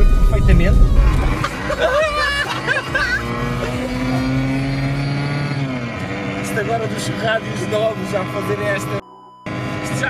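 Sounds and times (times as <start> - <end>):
car engine pulling in gear: 0.0 - 10.0.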